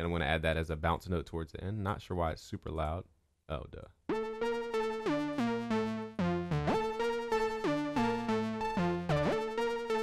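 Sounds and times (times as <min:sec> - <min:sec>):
synthesizer melody: 0:04.1 - 0:10.0.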